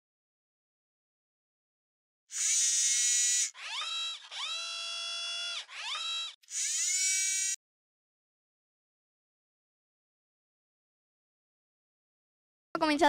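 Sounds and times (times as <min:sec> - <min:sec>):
bright buzzy synth tone: 0:06.5 - 0:07.6.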